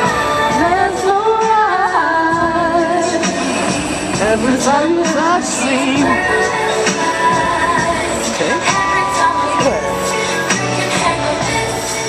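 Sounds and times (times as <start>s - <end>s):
recorded backing music: 0.0s - 12.0s
woman singing into microphone: 0.0s - 12.0s.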